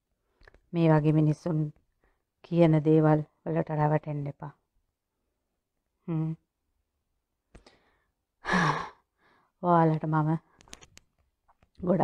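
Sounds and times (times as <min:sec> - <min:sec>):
woman sighing: 0:08.4 - 0:09.0.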